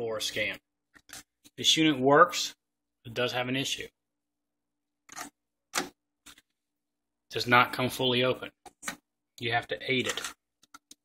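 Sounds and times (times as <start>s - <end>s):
person speaking: 7.3s - 11.0s.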